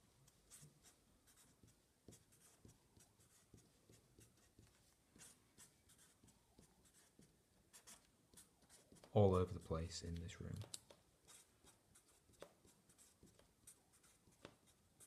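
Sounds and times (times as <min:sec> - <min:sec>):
marker scratching on paper: 0:00.2 - 0:09.1, 0:10.7 - 0:15.0.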